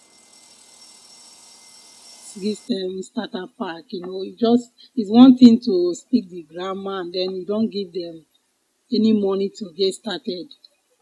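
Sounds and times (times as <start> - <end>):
thin high tone: 0.0 - 3.2
faint background hiss: 2.2 - 11.0.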